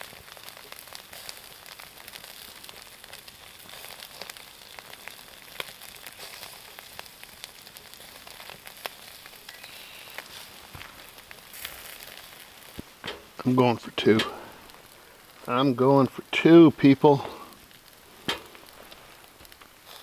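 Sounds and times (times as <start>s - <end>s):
burgers sizzling on grill: 0.0s - 20.0s
charcoal pops and crackles: 0.0s - 20.0s.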